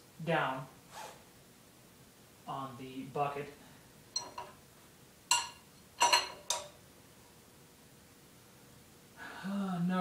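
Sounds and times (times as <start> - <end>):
wrench clinking on bolt: 4.2 - 4.6, 5.3 - 6.8.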